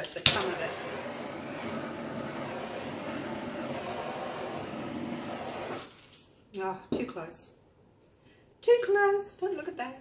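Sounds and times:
gas torch hissing: 0:00.0 - 0:06.0.

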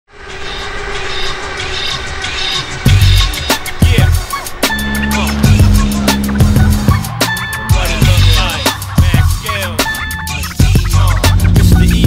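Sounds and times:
electric train passing: 0:00.1 - 0:09.8.

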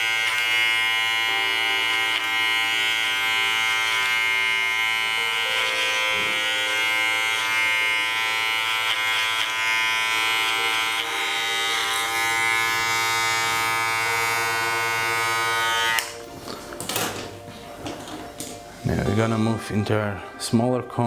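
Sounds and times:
electric hair clippers buzzing: 0:00.0 - 0:17.4.

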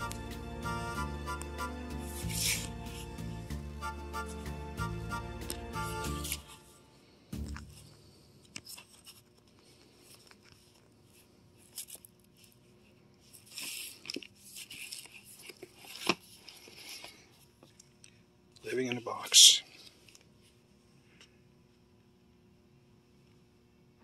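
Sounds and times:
music: 0:00.0 - 0:08.0
record sleeves sliding and scraping: 0:02.0 - 0:03.2
soft rustles and light clicks: 0:08.5 - 0:19.0.

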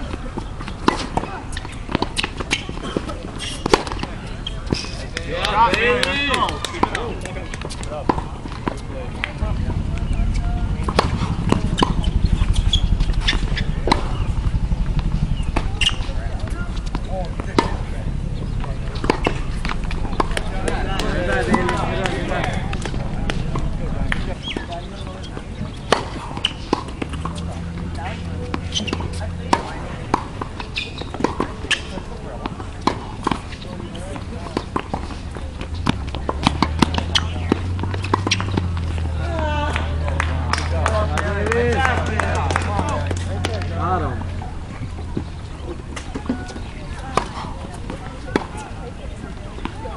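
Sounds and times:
tennis balls struck and bouncing: 0:00.0 - 0:49.9
background voices: 0:06.8 - 0:49.9
low rumble: 0:07.2 - 0:33.4, 0:35.2 - 0:49.5.

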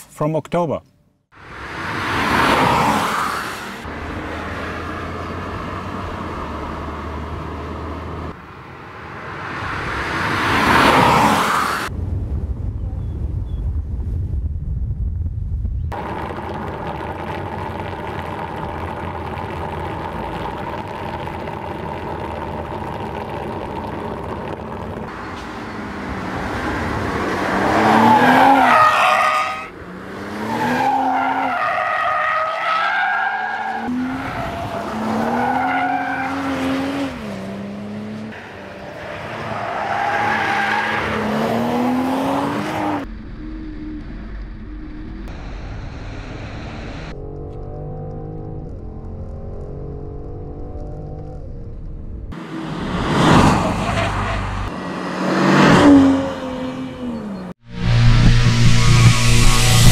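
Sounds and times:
car engine accelerating: 0:15.9 - 0:59.9.

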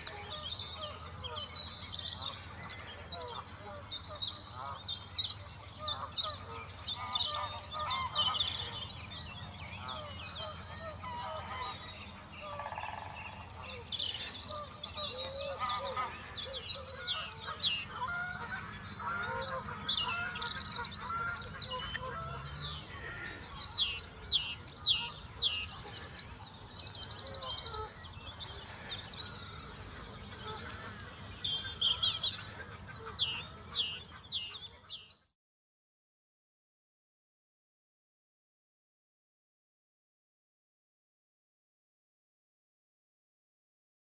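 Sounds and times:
songbirds singing: 0:00.0 - 0:35.4.

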